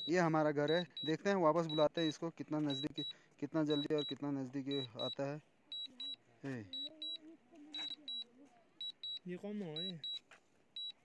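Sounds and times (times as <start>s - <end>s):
remote controller double beeps: 0.0s - 3.1s, 3.7s - 5.2s, 6.8s - 7.2s, 7.8s - 8.2s, 9.8s - 10.2s.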